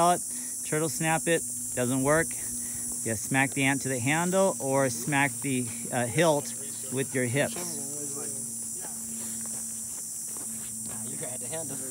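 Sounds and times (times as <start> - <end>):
high-pitched insect chorus: 0.0 - 11.9.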